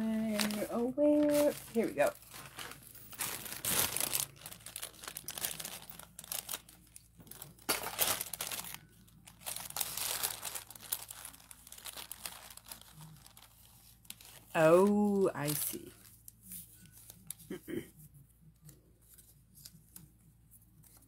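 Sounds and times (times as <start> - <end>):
paper tickets crinkling and rustling: 0.0 - 17.5.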